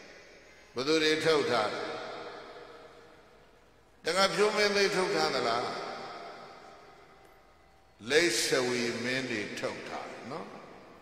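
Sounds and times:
man speaking over loudspeakers: 0.0 - 3.3, 4.0 - 7.2, 7.9 - 11.0
faint background hiss: 0.0 - 11.0.

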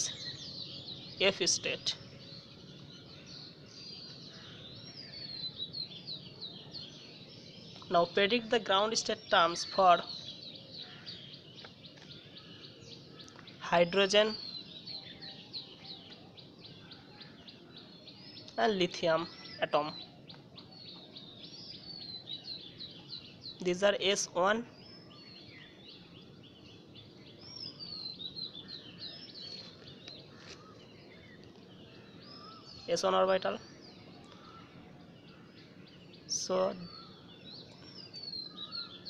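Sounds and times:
birds chirping: 0.0 - 39.0.

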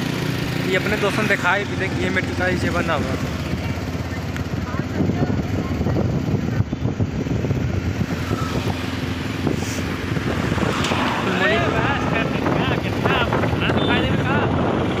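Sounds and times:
road and traffic noise: 0.0 - 15.0
voices talking: 0.4 - 15.0
wind on microphone: 4.5 - 15.0.

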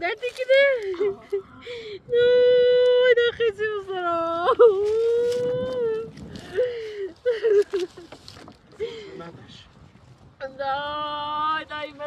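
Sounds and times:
person sobbing: 4.4 - 8.1
faint rustling and clicks: 4.8 - 8.8.

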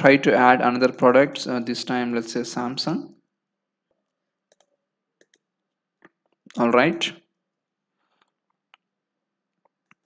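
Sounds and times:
computer keyboard and mouse clicks: 3.9 - 6.6, 8.1 - 10.0.

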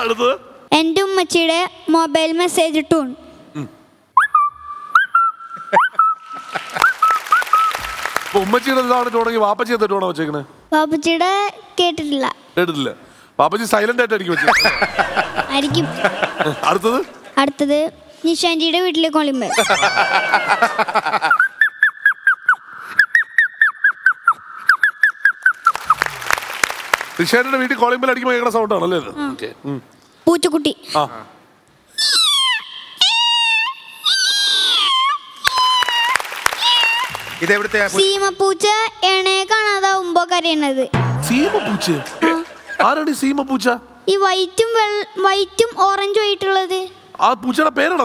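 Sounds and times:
boy making squeaky chirps: 4.2 - 7.8, 21.4 - 26.0, 31.9 - 37.2
applause: 6.3 - 9.4, 25.6 - 27.8, 35.4 - 38.0.

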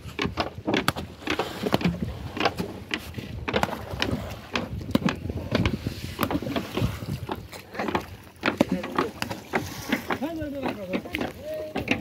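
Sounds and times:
net and rope hauled in: 0.0 - 12.0
knocks on a wooden boat: 0.2 - 12.0.

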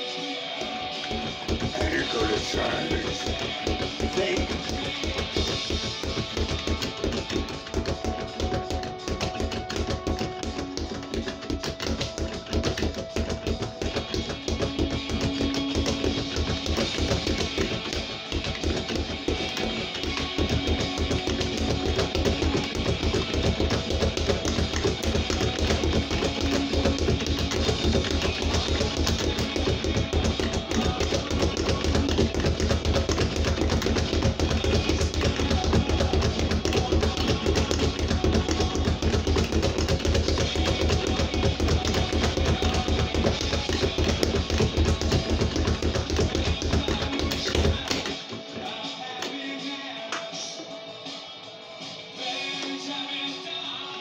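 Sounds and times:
heavy rock music: 0.0 - 11.1
speed bag being punched: 0.6 - 48.3.

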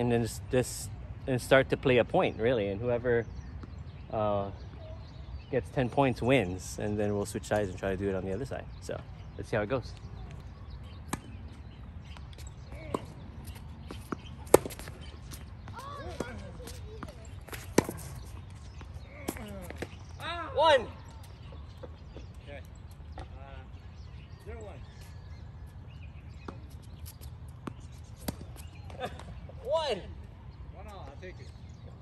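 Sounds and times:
tennis balls struck and bouncing: 11.0 - 20.1, 26.4 - 29.6.

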